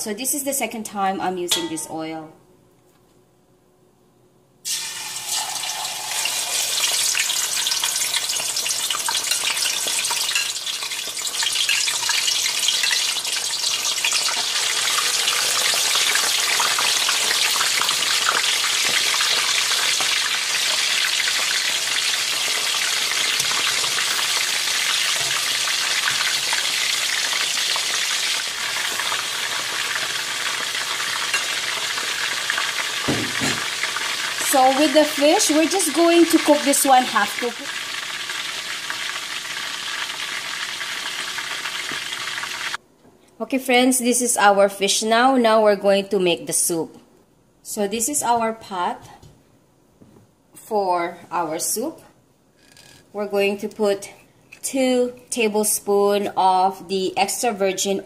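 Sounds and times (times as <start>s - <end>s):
fish sizzling in hot oil: 4.7s - 42.8s.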